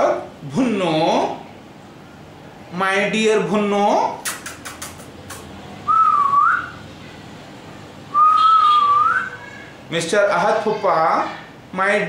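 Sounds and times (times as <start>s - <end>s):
man whistling: 5.9s - 6.8s, 8.1s - 9.3s.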